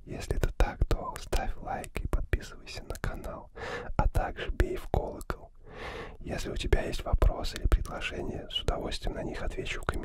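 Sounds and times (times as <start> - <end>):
man whispering: 0.0 - 10.0.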